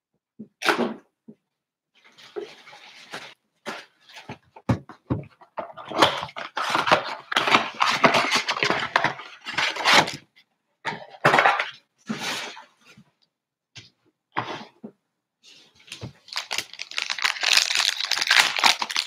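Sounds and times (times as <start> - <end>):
foil wrappers crinkling: 16.2 - 19.0
cardboard tearing and crackling: 16.3 - 19.0.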